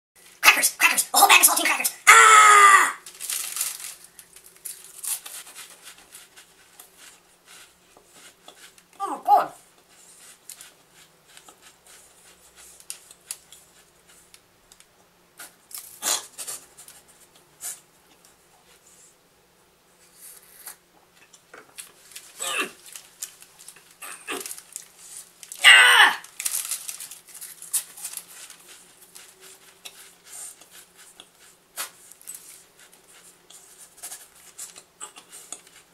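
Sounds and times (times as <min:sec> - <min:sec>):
man whining cries: 0:02.1 - 0:03.0, 0:25.6 - 0:26.2
man yelling: 0:02.1 - 0:03.0, 0:25.6 - 0:26.2
plastic sleeve crinkling: 0:02.4 - 0:07.7, 0:21.7 - 0:30.7.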